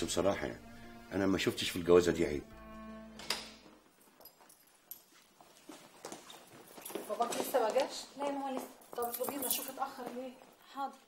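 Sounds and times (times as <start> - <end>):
footsteps on hard floor: 3.5 - 10.6.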